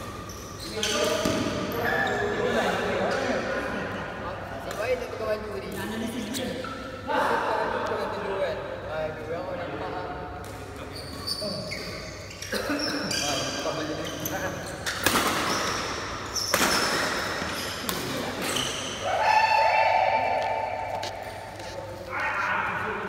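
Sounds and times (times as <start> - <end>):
sports shoes squeaking: 0.0 - 2.4, 10.5 - 19.0
players' voices: 0.6 - 15.9
racket hitting shuttlecock: 14.8 - 18.6.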